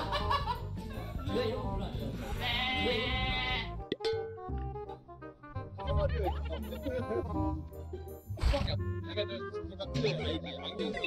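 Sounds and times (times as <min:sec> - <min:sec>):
men talking and laughing: 0:00.0 - 0:03.3, 0:05.6 - 0:11.0
background music: 0:00.0 - 0:11.0.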